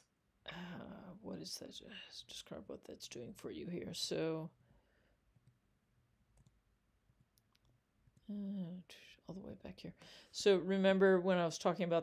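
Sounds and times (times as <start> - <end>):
computer mouse clicks: 6.3 - 8.3.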